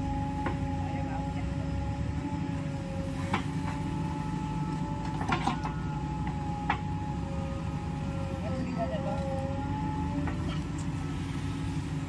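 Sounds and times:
diesel engine rumbling under load: 0.0 - 12.0
hydraulic whine: 0.0 - 12.0.

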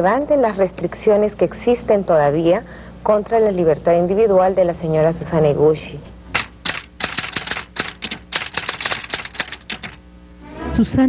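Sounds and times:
typewriter keys clacking: 6.4 - 10.0.

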